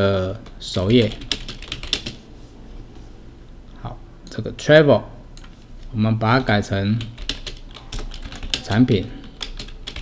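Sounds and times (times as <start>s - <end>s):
computer keyboard typing: 0.4s - 2.2s, 6.9s - 10.0s.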